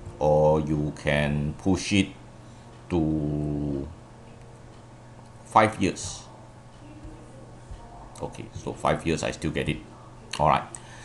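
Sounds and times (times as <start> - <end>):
faint low hum: 0.0 - 11.0
man saying uhh: 3.0 - 3.9.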